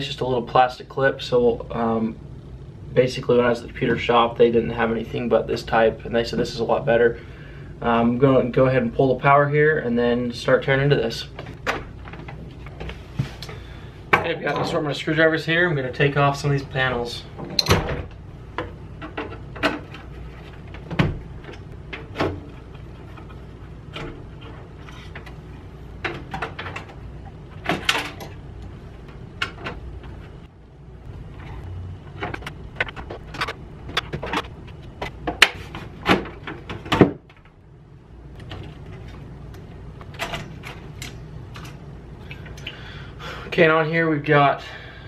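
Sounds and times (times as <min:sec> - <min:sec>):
low steady hum: 0:00.0 - 0:45.0
computer parts clicking and rattling: 0:31.3 - 0:37.5, 0:38.3 - 0:41.8.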